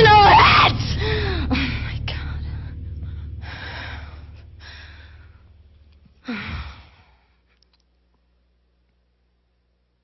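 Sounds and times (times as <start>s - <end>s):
woman sighing: 6.2s - 7.3s.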